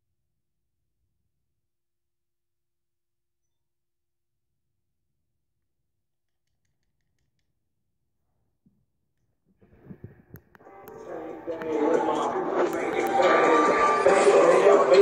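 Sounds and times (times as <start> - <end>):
hip-hop track with rapping: 10.6 - 15.0.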